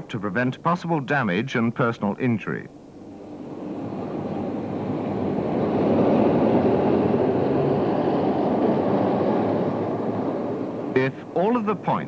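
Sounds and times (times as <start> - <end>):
bus driving past: 2.7 - 12.0.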